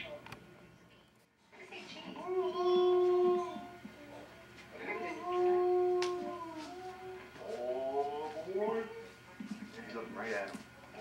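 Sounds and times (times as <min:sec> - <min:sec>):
long wailing cries: 0:04.8 - 0:09.1.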